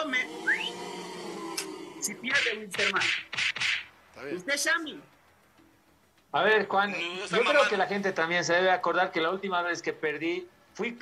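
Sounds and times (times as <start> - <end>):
man holding drawn-out vocal sound: 0.0 - 2.3.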